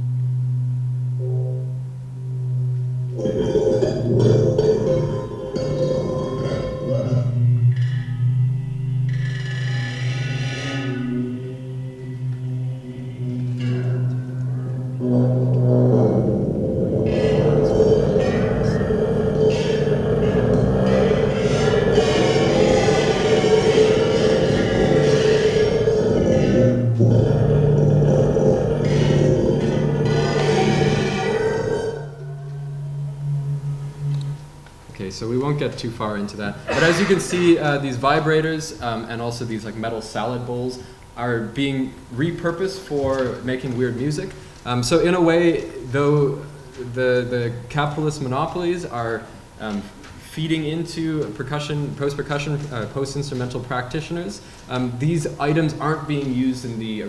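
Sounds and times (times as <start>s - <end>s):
vibrators buzzing on metal bowls: 0.0s - 57.0s.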